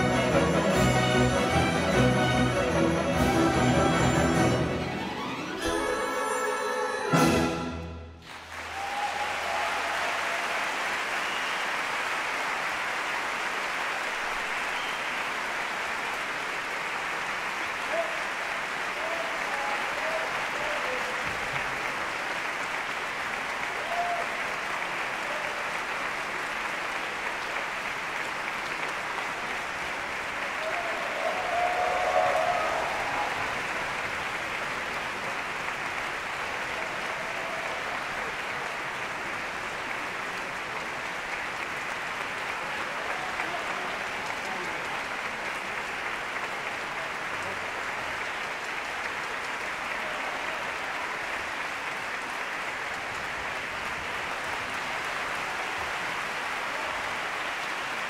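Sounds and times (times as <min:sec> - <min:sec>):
audience applauding: 0:00.0 - 0:05.9, 0:08.2 - 0:58.0
orchestra final chord: 0:00.0 - 0:08.2.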